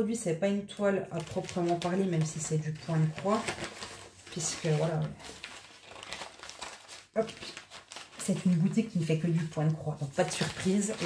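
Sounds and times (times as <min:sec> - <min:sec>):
plastic packaging rustling: 0:01.1 - 0:11.0.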